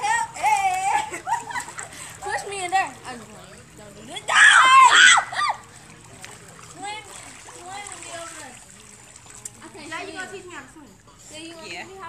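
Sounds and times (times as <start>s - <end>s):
water splashing in pool: 0.0s - 11.0s.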